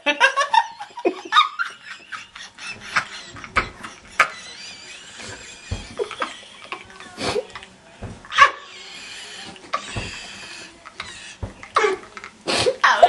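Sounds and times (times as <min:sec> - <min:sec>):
bursts of stifled laughter: 0:00.0 - 0:07.6
breathy giggling: 0:00.0 - 0:13.0.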